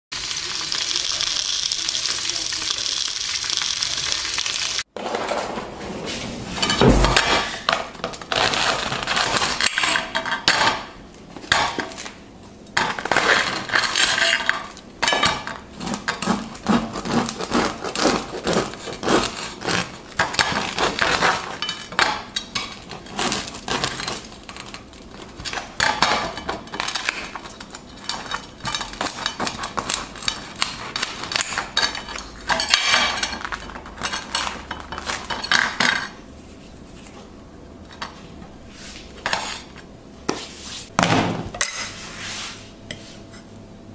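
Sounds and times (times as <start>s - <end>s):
sausages sizzling in a frying pan: 0.2s - 4.9s.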